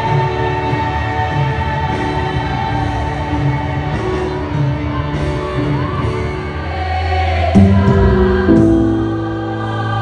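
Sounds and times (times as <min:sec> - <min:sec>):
choir singing: 0:00.0 - 0:10.0
church band with keyboard: 0:00.0 - 0:10.0.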